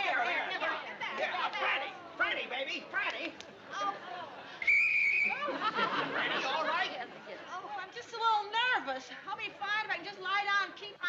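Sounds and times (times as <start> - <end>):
murmuring voices: 0.0 - 8.4
whistle blast: 4.6 - 5.4.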